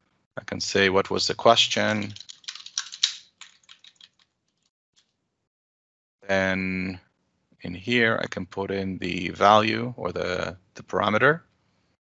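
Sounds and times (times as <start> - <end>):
typing on computer keyboard: 1.7 - 4.3.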